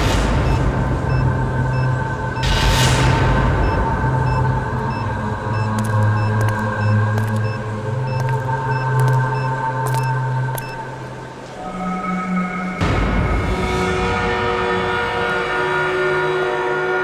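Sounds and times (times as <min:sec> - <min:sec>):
tense background score drone: 0:00.0 - 0:17.0.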